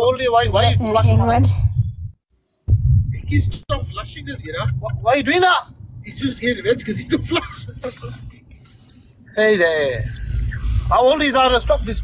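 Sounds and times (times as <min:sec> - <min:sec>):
man speaking: 0:00.0 - 0:01.4
steady low hum: 0:00.2 - 0:12.0.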